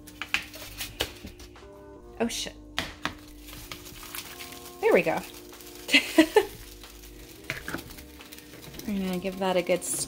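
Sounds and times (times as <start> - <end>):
background music with steady tones: 0.0 - 10.0.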